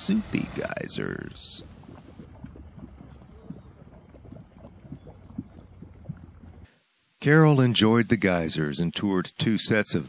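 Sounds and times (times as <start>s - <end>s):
mud pot bubbling: 0.0s - 9.6s.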